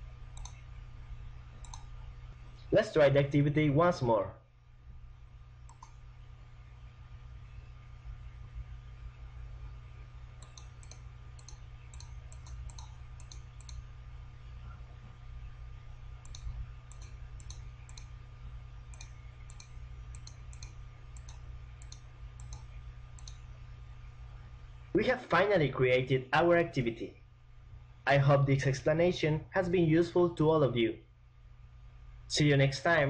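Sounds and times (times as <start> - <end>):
low electrical hum: 0.0 - 33.0
computer mouse button clicking: 0.4 - 0.6, 1.6 - 1.9, 5.7 - 6.0, 10.4 - 13.9, 16.2 - 18.1, 18.9 - 23.4.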